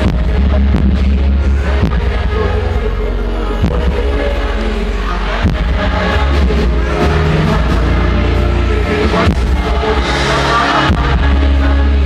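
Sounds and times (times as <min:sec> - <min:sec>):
live concert music over pa: 0:00.0 - 0:12.0.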